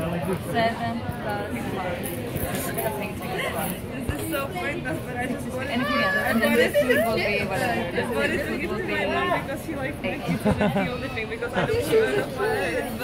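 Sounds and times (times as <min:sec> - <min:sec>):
people talking over one another: 0:00.0 - 0:13.0.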